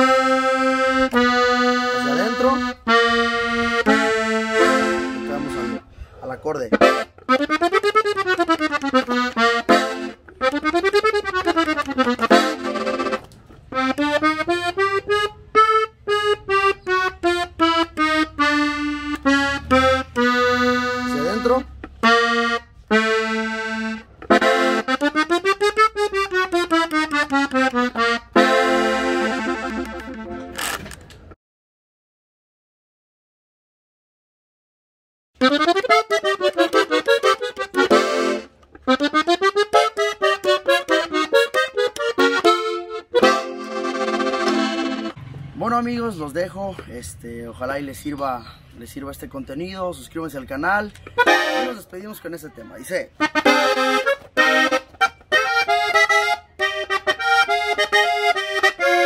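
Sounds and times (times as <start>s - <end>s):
button accordion playing chords: 0.0s - 31.0s, 35.4s - 48.2s, 48.8s - 59.0s.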